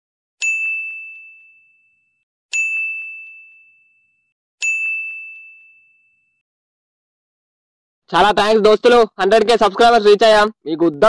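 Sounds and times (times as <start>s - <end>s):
bell-like dings: 0.4s - 6.4s.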